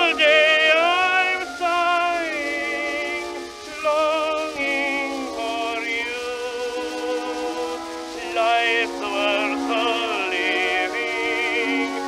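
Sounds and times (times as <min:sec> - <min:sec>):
orchestra playing: 0:00.0 - 0:12.0
tenor singing: 0:00.0 - 0:12.0.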